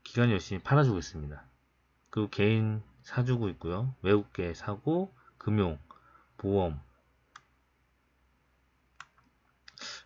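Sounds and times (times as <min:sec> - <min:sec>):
computer mouse click: 0:09.0 - 0:09.8
short breath-like hiss: 0:09.7 - 0:10.0.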